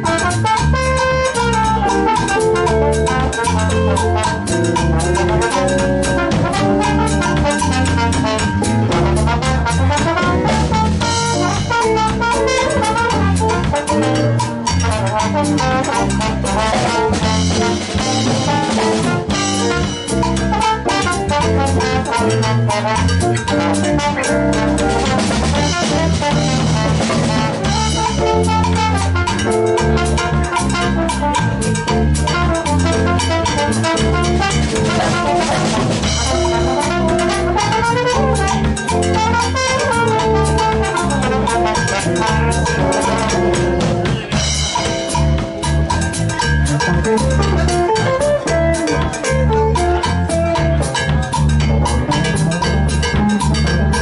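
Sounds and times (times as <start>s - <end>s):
bass line: 0.0s - 54.0s
bass trumpet solo: 0.0s - 54.0s
drum kit: 0.0s - 54.0s.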